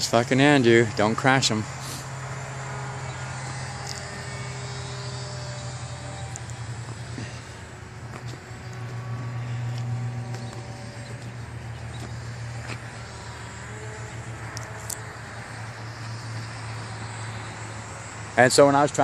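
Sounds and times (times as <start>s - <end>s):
low hum: 0.0s - 19.0s
model airplane motors droning: 0.0s - 19.0s.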